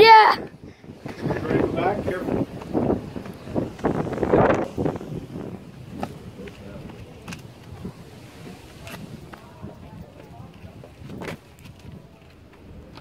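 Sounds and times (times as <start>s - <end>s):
wind rumble on microphone: 0.0s - 13.0s
footsteps on rough rock: 1.0s - 4.9s, 8.6s - 13.0s.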